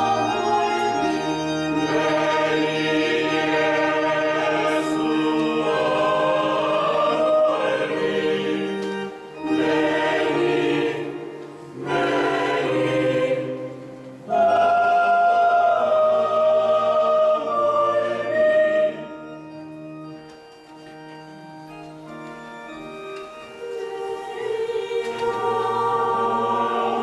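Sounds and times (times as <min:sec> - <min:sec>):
choir chanting: 0:00.0 - 0:19.7, 0:22.7 - 0:27.0.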